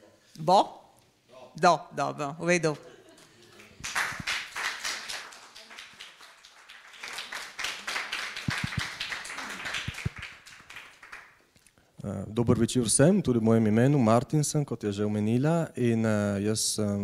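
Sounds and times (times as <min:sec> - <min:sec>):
audience clapping: 0:03.4 - 0:11.5.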